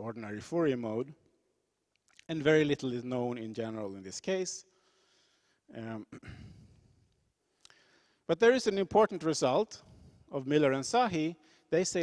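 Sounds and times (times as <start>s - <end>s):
man exhaling: 6.2s - 7.0s.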